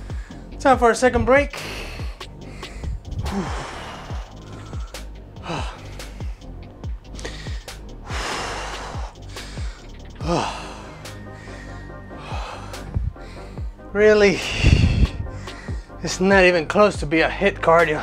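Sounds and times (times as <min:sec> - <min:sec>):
man gasping breaths: 0:00.0 - 0:00.6, 0:01.6 - 0:16.0
background music with beat: 0:00.0 - 0:18.0.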